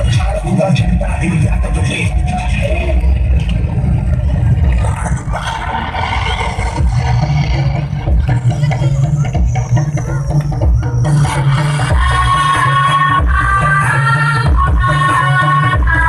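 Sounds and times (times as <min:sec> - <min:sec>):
loud bass-heavy dance music: 0:00.0 - 0:16.0.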